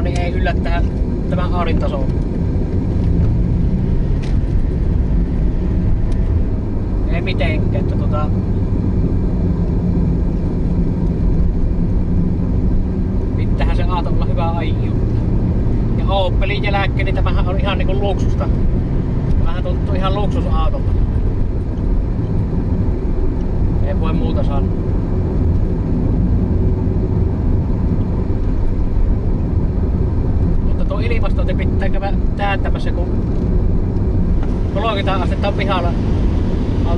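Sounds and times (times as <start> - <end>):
car engine drone in cabin: 0.0 - 36.9
road noise: 0.0 - 36.9.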